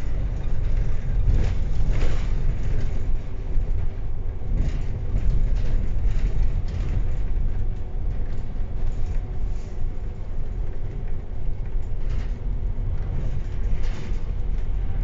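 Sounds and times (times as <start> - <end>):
bus engine and road rumble: 0.0 - 15.0.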